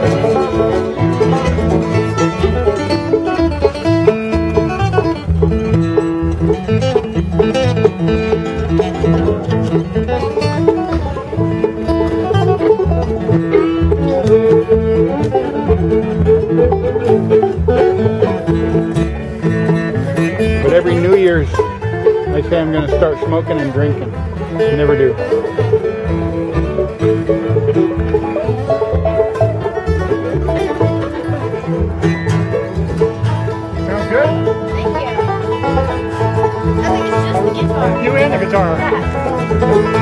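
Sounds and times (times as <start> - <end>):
banjo: 0.0 - 40.0
bluegrass band playing: 0.0 - 40.0
upright bass beat: 0.0 - 40.0.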